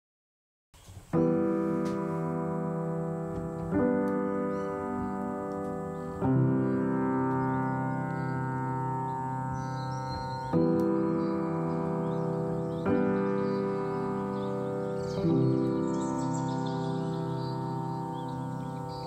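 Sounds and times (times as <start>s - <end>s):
sustained piano chords: 1.1s - 19.0s.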